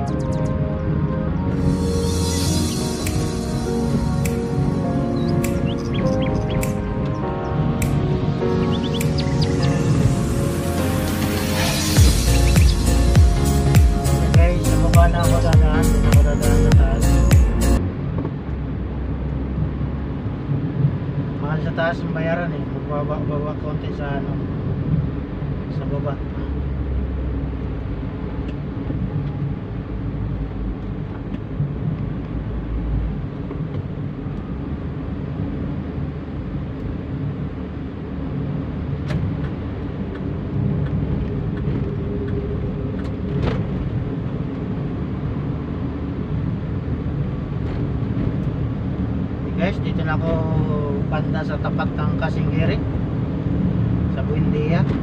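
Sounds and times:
vehicle road and engine rumble: 0.0 - 55.0.

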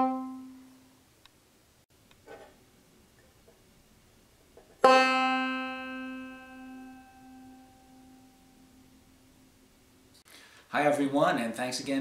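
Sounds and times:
banjo note plucked: 0.0 - 0.7, 4.7 - 9.1.

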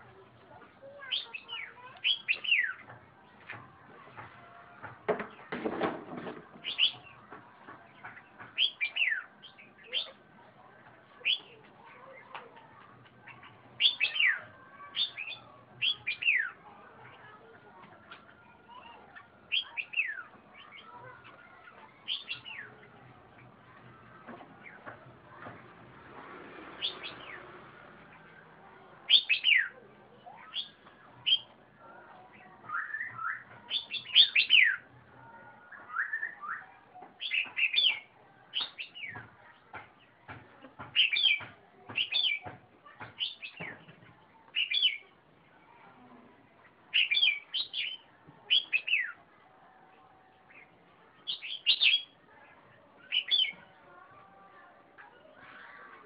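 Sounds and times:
bird singing whistled phrases: 32.7 - 34.8, 35.8 - 36.7.

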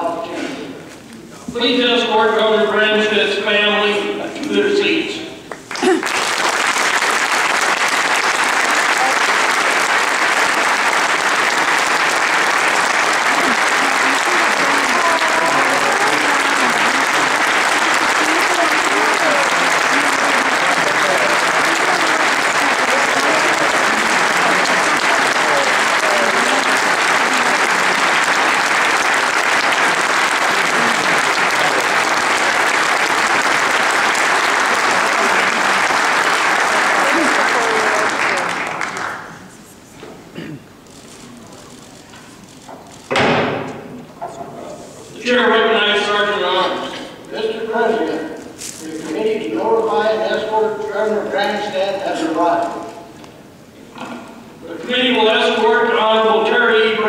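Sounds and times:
crowd applause: 5.5 - 39.7
crowd voices: 8.4 - 42.5.

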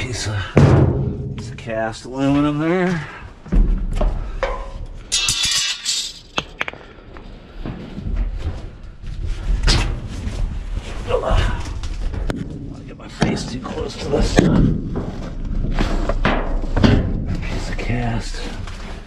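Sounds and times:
heavy thud: 0.6 - 1.7
high metallic scrape: 5.1 - 6.4.

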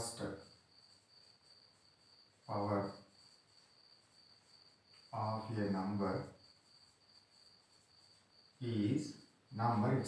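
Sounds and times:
man talking: 0.0 - 0.4, 2.5 - 3.0, 5.2 - 6.3, 8.6 - 10.0.

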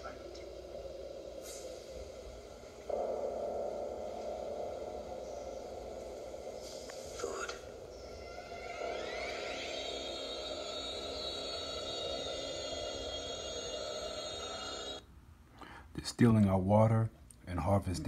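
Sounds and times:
electronic tones with rising sweeps: 2.8 - 15.0.

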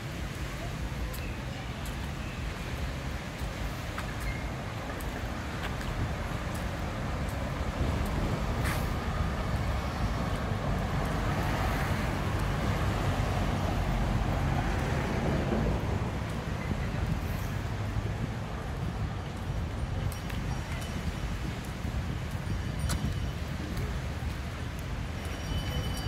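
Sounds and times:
vehicles passing on a street: 0.0 - 26.0.

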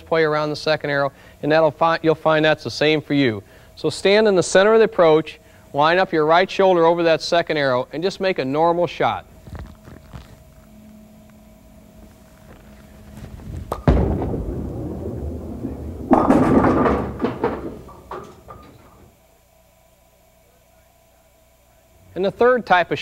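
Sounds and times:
bowling ball rolling rumble: 12.6 - 19.1
bowling ball thudding onto lane: 13.6 - 19.1
bowling pins clattering: 13.6 - 19.1.

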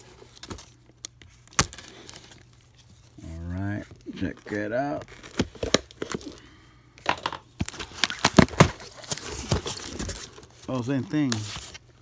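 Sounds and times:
cardboard box tape tearing: 1.4 - 2.4, 4.5 - 6.2, 7.6 - 11.8.

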